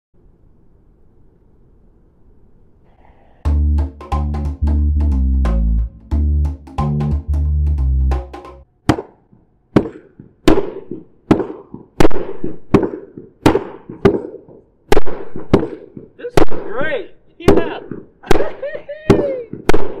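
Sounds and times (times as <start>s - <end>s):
voice crying out: 18.6s - 19.6s.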